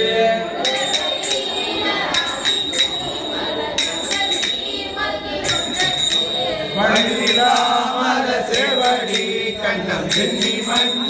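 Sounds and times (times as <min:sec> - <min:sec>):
group chanting hymns in unison: 0:00.0 - 0:11.0
sharp metallic strikes ringing: 0:00.6 - 0:11.0.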